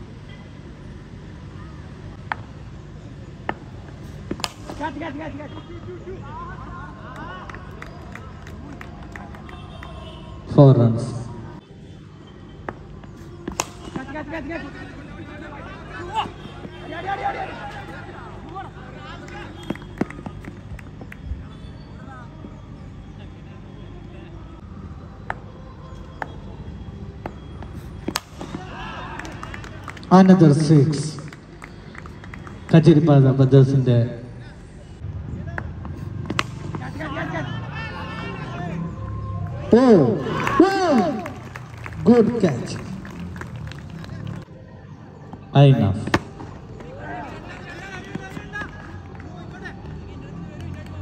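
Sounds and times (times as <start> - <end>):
faint crowd chatter: 0.0 - 51.0
bat hitting ball: 4.3 - 4.9, 13.4 - 14.1, 28.0 - 28.8, 36.2 - 36.9
cricket bat striking ball: 4.3 - 5.0, 12.6 - 14.2, 27.2 - 28.8, 35.5 - 37.1, 46.0 - 46.9
crowd murmur: 13.2 - 21.5, 34.2 - 51.0
men shouting: 14.6 - 19.5, 28.5 - 29.8, 36.9 - 41.4.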